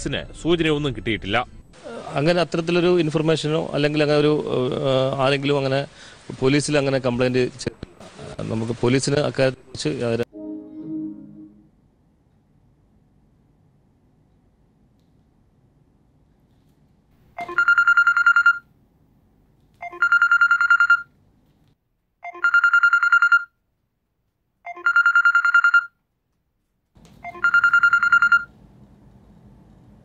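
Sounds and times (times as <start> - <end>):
electronic trilling ringtone: 17.4 - 18.6, 19.8 - 21.1, 22.2 - 23.5, 24.7 - 25.9, 27.2 - 28.5.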